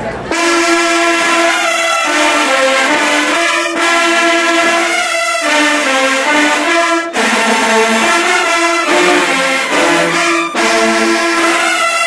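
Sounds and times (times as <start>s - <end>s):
brass band sustained chords: 0.2s - 12.0s.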